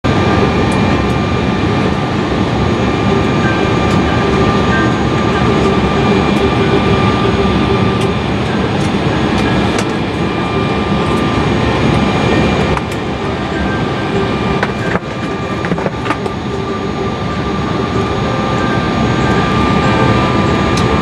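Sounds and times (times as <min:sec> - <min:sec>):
jet engines whining rumble: 0:00.0 - 0:21.0.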